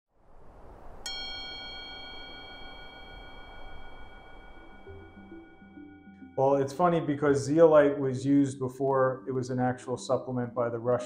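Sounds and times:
soft low drone: 0:00.3 - 0:10.0
bell-like chime ringing: 0:01.1 - 0:07.1.

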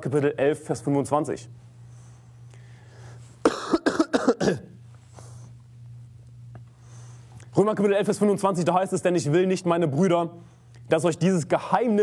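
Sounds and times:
faint low hum: 0:00.0 - 0:12.0
person coughing: 0:03.4 - 0:04.8.

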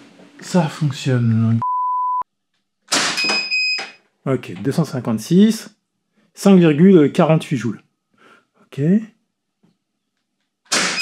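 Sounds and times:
high chronograph beep: 0:01.6 - 0:02.2, 0:03.2 - 0:04.0
air pistol shot: 0:02.9 - 0:03.3, 0:10.7 - 0:11.0.

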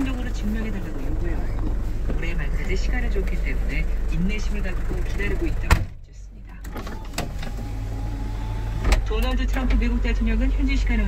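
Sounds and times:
diesel truck engine idling: 0:00.0 - 0:11.0.

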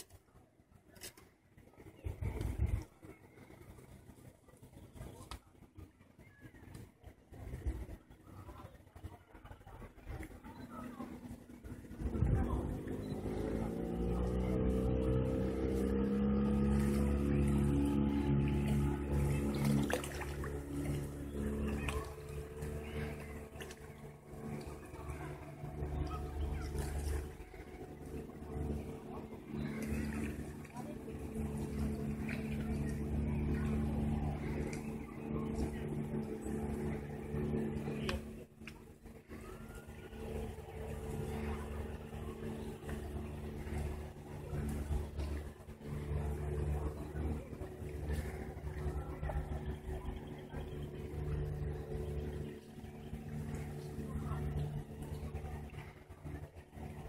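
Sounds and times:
engine running steadily: 0:00.0 - 0:57.0
distant motor humming: 0:01.6 - 0:57.0
wind rumbling on microphone: 0:01.6 - 0:57.0.

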